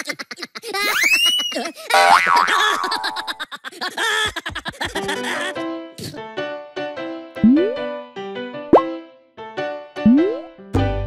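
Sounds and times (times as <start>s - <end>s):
cartoon boing: 2.0s - 3.1s.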